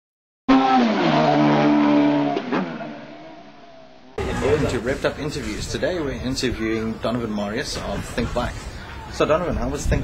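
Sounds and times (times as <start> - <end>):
vehicle engine at high revs: 0.5 - 4.2.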